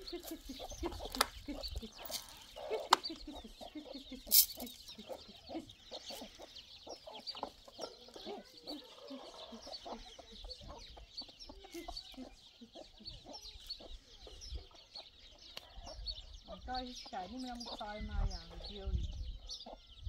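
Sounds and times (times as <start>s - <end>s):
chickens clucking: 0.0s - 20.0s
high chirping: 0.0s - 20.0s.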